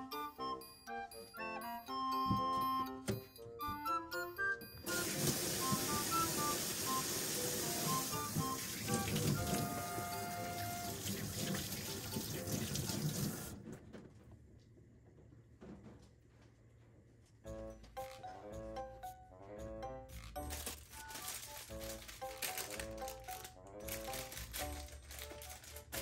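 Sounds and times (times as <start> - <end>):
light background music: 0.0 - 13.5, 17.4 - 26.0
tap running into a sink: 4.9 - 13.6.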